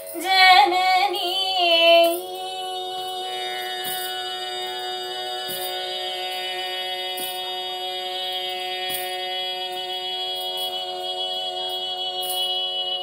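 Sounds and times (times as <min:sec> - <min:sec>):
person singing: 0:00.0 - 0:13.0
tanpura drone: 0:00.0 - 0:13.0.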